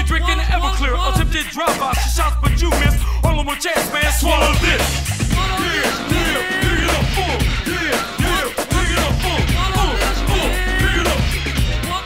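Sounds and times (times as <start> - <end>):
hip hop instrumental beat: 0.0 - 12.0
high sliding vocal-like sounds: 4.0 - 12.0.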